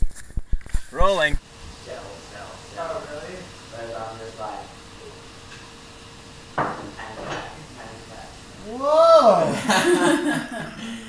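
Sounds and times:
faint steady hum: 0:00.2 - 0:11.0.

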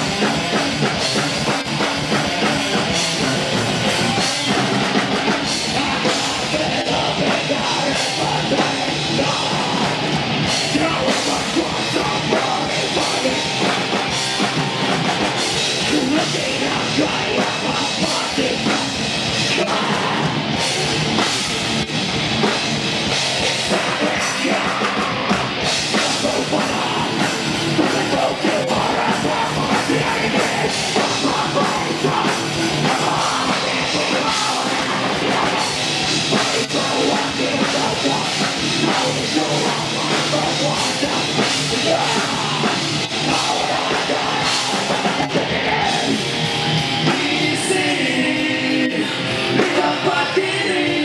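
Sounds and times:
drum kit: 0:00.0 - 0:51.0
electric guitars: 0:00.0 - 0:51.0
vocalist singing into a microphone: 0:04.0 - 0:14.4, 0:15.2 - 0:21.0, 0:23.4 - 0:51.0.

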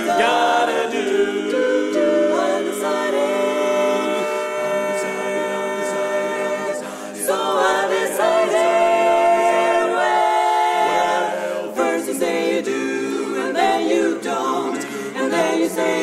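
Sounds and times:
mixed choir singing a cappella: 0:00.0 - 0:16.0.

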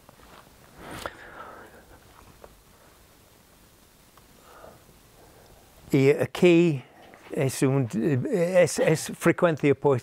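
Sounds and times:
soft breathing: 0:00.7 - 0:03.2, 0:04.3 - 0:05.9.

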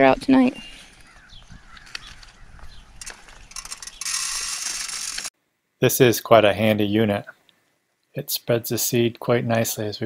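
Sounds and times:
crank whirring with spreading seed: 0:03.0 - 0:05.3
mechanism clicks: 0:03.0 - 0:05.3.

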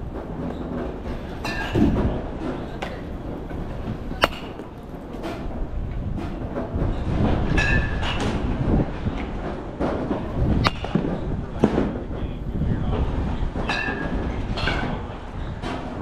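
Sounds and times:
ringing bat knocks: 0:04.1 - 0:04.8
crisp bat crack: 0:04.1 - 0:04.9.

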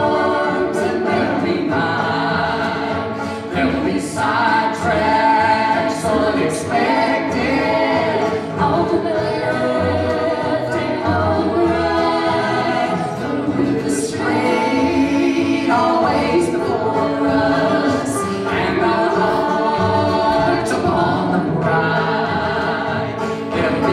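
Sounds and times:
cello: 0:00.0 - 0:23.9
picked banjo: 0:00.0 - 0:23.9
strummed acoustic guitar: 0:00.0 - 0:23.9
voices singing in harmony: 0:00.0 - 0:23.9.

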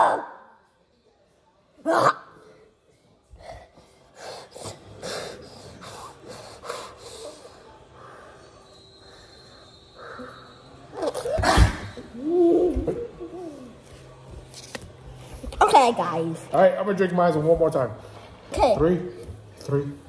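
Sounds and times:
person breathing hard: 0:03.3 - 0:08.5.

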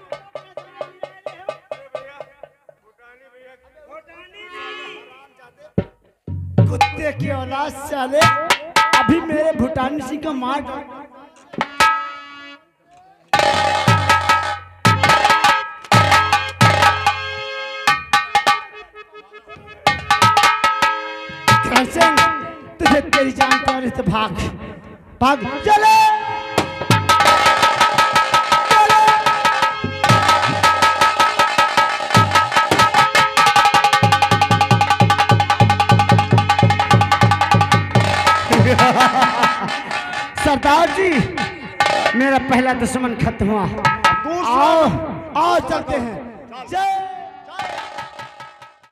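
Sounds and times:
rapid drum strokes: 0:13.3 - 0:24.1, 0:26.2 - 0:43.1, 0:47.6 - 0:48.9.

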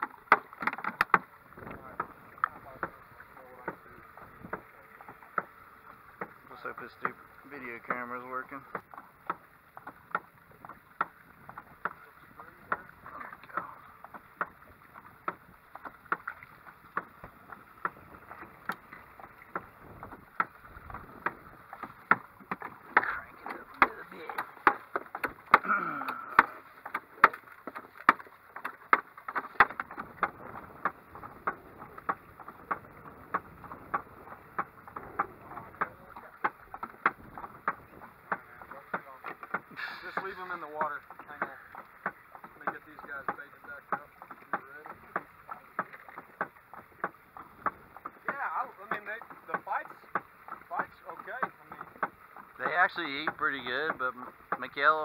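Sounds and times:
mallet knocking on boat hull: 0:15.2 - 0:55.0.

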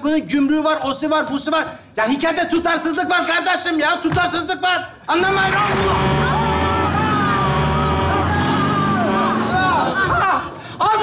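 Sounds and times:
voices crying out: 0:05.2 - 0:11.0
bus swerving sound effect: 0:05.7 - 0:09.9.

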